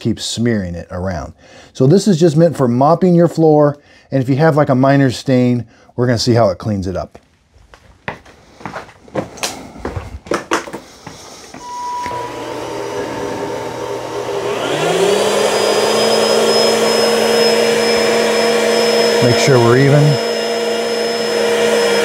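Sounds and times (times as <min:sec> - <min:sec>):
high vacuum motor whine: 0:11.6 - 0:22.0
motor humming: 0:11.6 - 0:22.0.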